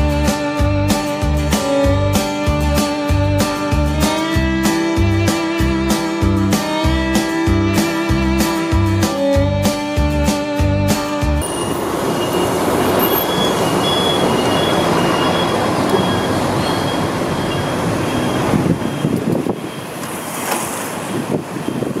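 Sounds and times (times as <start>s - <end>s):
street noise on wet road: 0.0s - 22.0s.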